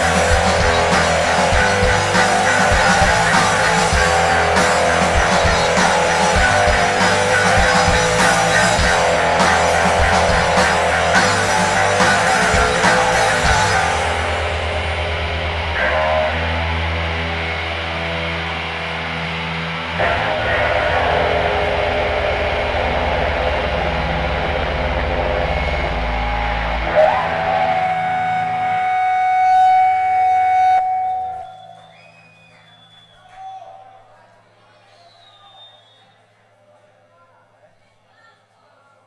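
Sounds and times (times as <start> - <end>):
live rock band: 0.0 - 31.6.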